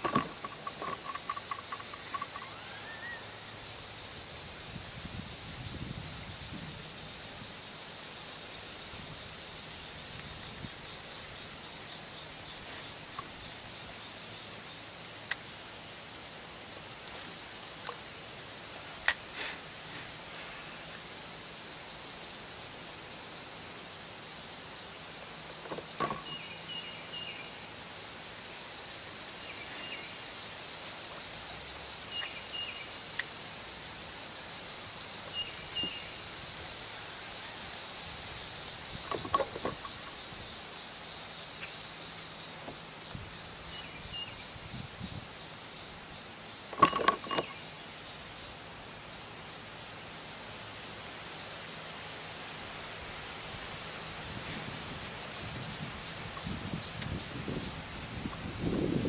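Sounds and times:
sharp clicks and knocks: 0.0 - 2.4, 25.6 - 26.3, 39.0 - 40.1, 46.7 - 47.6
high-pitched insect drone: 0.0 - 7.5
bird chirps: 0.1 - 3.9, 32.0 - 33.0, 35.2 - 36.3.

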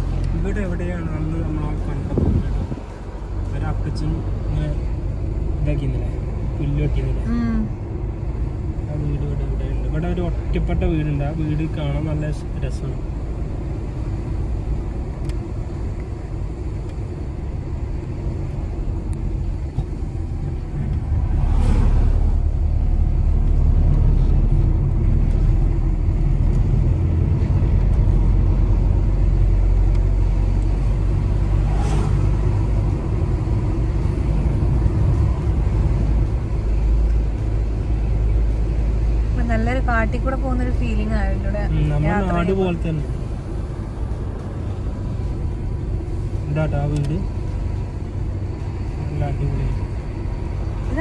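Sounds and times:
car engine and tyre rumble: 0.0 - 51.0
brief swishes: 31.6 - 32.3.

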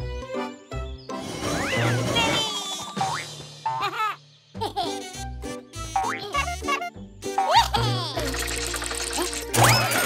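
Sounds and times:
playful cartoon music: 0.0 - 10.0.

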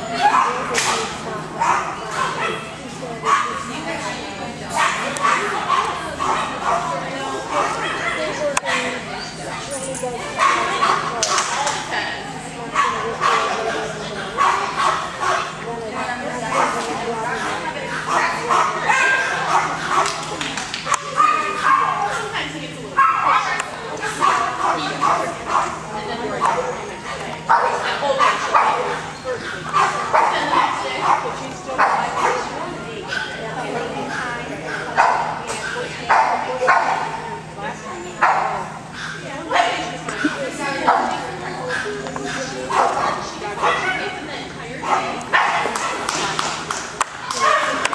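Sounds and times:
people talking: 0.0 - 47.9.

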